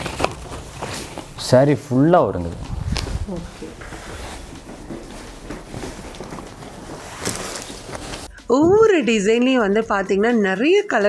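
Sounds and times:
fabric rustling: 0.0s - 8.4s.

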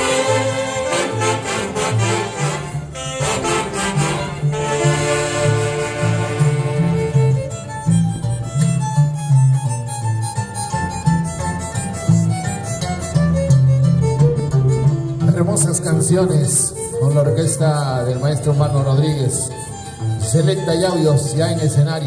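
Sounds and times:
saxophones playing: 0.0s - 7.6s
pulsing bass line: 0.0s - 16.3s
violin: 0.0s - 22.0s.

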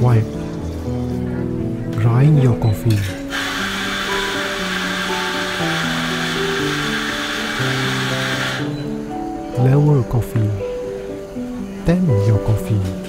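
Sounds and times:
coffee grinder whirring: 3.3s - 8.8s.

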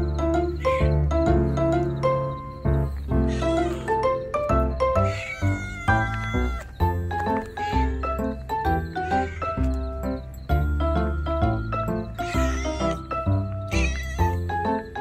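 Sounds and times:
cheerful background music: 0.0s - 15.0s
cat meowing: 0.6s - 1.0s, 5.0s - 6.8s, 9.0s - 9.6s, 12.2s - 13.1s, 13.7s - 14.5s.

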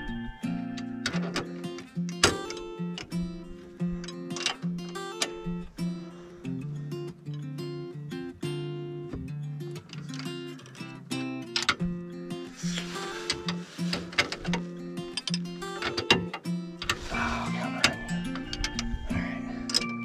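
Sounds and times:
plucked guitar music: 0.0s - 20.0s.

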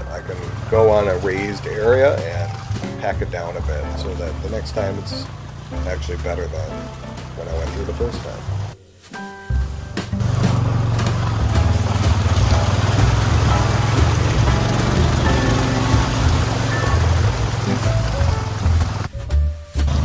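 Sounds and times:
vehicle engine running low: 0.0s - 8.8s, 9.6s - 19.1s
guitar music: 0.0s - 20.0s
rubber tracks in mud: 0.0s - 20.0s.

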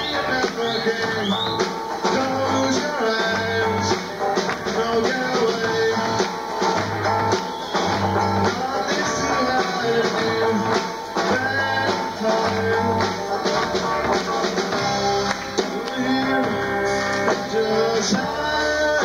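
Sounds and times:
drum kit: 0.0s - 19.0s
electric guitar: 0.0s - 19.0s.

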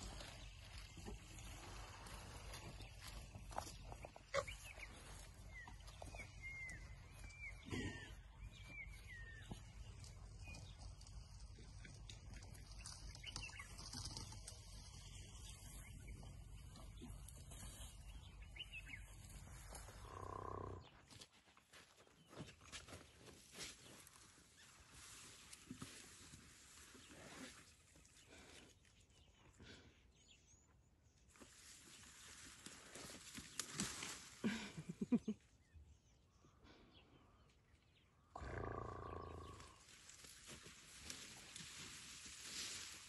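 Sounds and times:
bush rustling: 0.0s - 7.6s, 31.3s - 35.2s, 39.6s - 43.0s.

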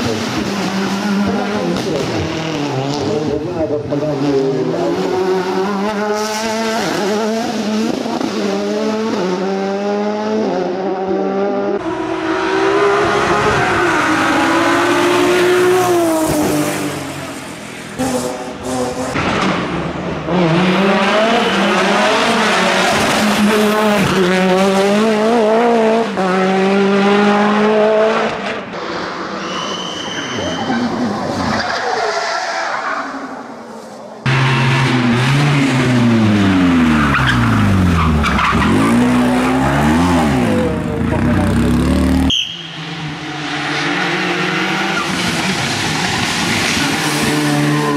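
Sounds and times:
racing car engines revving: 0.0s - 47.9s.

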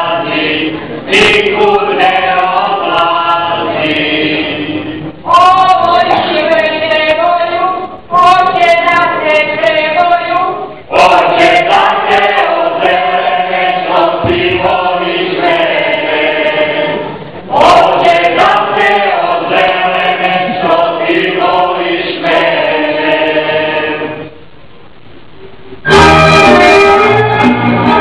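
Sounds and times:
group of voices singing: 0.0s - 24.4s, 25.9s - 28.0s.

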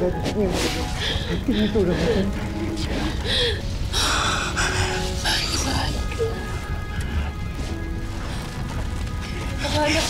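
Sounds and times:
dramatic background music: 0.0s - 10.0s
fire rumbling and crackling: 0.0s - 10.0s.

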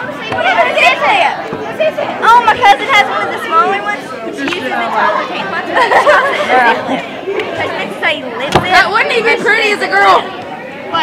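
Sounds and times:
young people talking over one another: 0.0s - 11.0s.

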